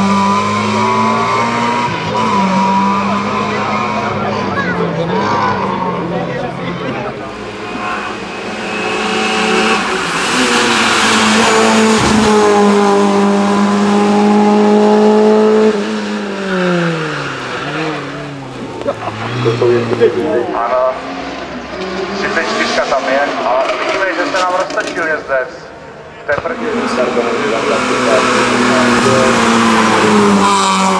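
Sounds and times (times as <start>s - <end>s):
racing car engine revving: 0.0s - 30.9s.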